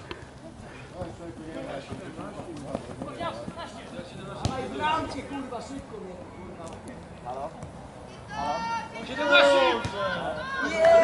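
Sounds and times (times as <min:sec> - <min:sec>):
ball being kicked: 0:04.4 - 0:04.7
distant shouts of players: 0:08.1 - 0:11.0.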